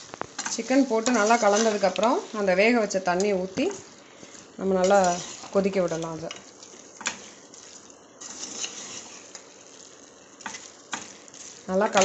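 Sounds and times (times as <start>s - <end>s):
chicken sizzling in a pot: 0.0s - 12.0s
spoon stirring: 4.8s - 9.5s.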